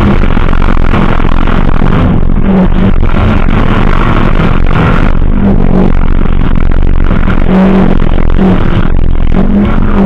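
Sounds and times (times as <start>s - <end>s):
race car engine revving: 0.0s - 10.0s.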